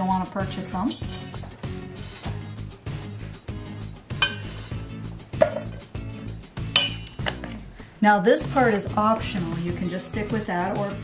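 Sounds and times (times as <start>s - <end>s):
background music: 0.0s - 11.0s
metal clinking on mixing bowl: 0.8s - 1.4s, 4.1s - 4.5s, 6.7s - 7.3s.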